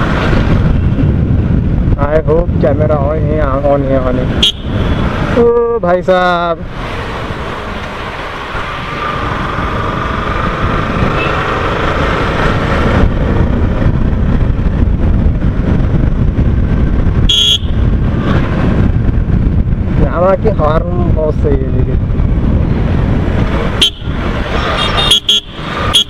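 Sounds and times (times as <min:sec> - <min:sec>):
wind and road noise: 0:00.0 - 0:26.0
motorcycle horn beep: 0:04.4 - 0:05.0, 0:17.3 - 0:17.8, 0:23.8 - 0:24.1, 0:24.8 - 0:26.0.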